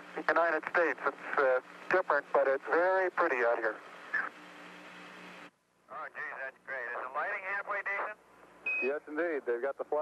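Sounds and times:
radio hiss and low hum: 0.0 - 10.0.

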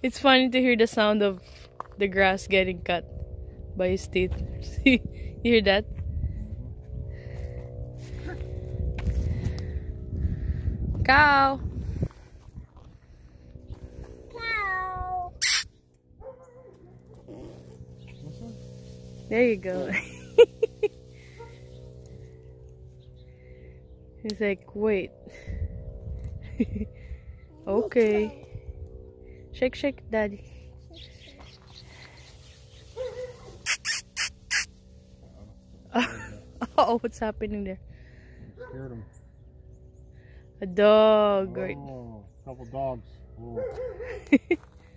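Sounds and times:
high-pitched descending call: 15.4 - 15.7
grass rustling swishes: 17.4 - 22.0, 32.0 - 35.6.

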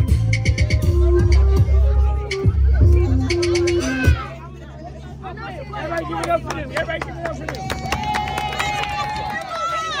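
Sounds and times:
crowd cheering: 5.8 - 10.0.

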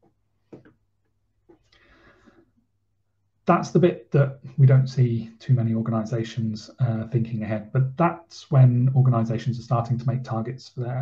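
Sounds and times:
faint breath: 1.6 - 2.6.

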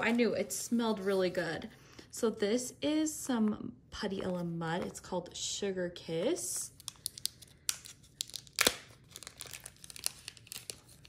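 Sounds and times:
plastic pouch crinkling: 6.7 - 11.0
plastic wrapping tearing: 6.8 - 11.0.

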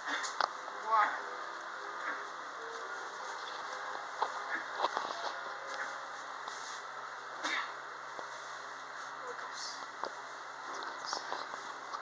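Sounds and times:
elevator hiss and hum: 0.0 - 12.0.

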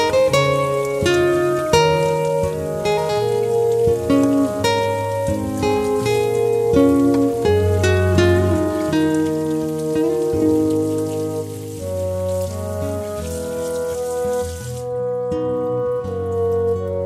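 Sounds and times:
tap water splashing over vegetable: 0.0 - 14.9
soft background music: 0.0 - 17.0.

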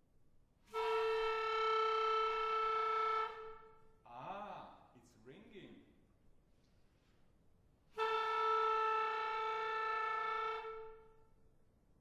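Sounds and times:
clarinet holding long note: 0.7 - 3.9, 7.9 - 11.3.

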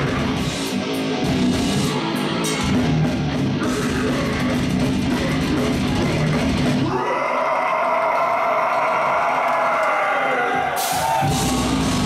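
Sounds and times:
metal band playing: 0.0 - 9.6, 10.3 - 12.0
vocalist screaming: 3.6 - 12.0.

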